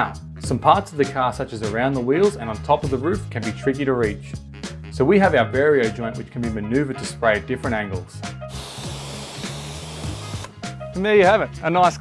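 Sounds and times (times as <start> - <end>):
background music: 0.0 - 12.0
pressure washer water jet hissing: 8.5 - 10.5.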